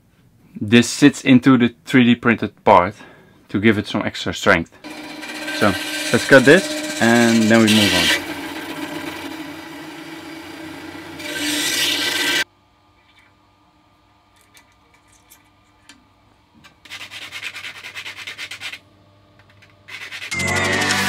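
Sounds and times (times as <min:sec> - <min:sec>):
bandsaw cutting metal tubing: 0:04.8 - 0:12.4, 0:19.9 - 0:21.0
sanding strokes on tube: 0:04.9 - 0:09.2, 0:16.8 - 0:18.8, 0:19.9 - 0:20.4.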